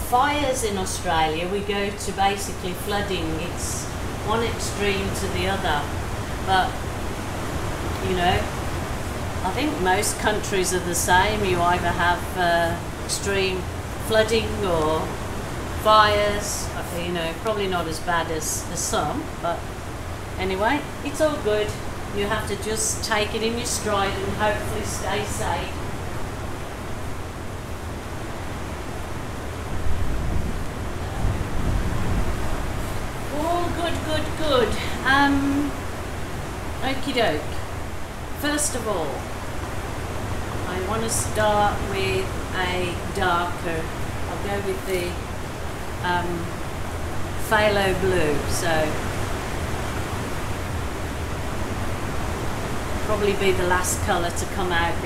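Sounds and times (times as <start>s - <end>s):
torrential rain falling: 0.0s - 55.0s.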